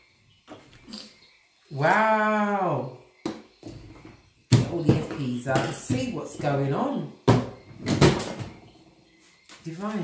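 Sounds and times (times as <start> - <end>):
knocks on a desk: 7.3 - 8.5.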